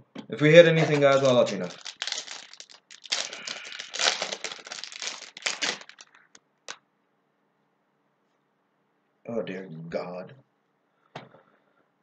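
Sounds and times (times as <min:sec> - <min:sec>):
foil wrapper crinkling: 0:00.7 - 0:06.4.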